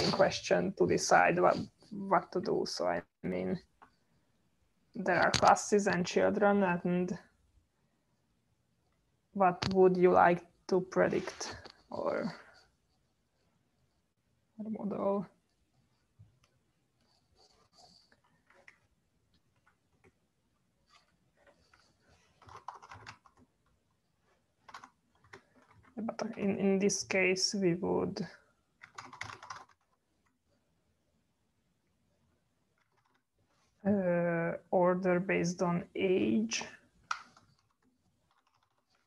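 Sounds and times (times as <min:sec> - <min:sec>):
typing on computer keyboard: 0:22.4 - 0:23.5, 0:24.6 - 0:25.9, 0:28.8 - 0:30.0, 0:37.1 - 0:39.0.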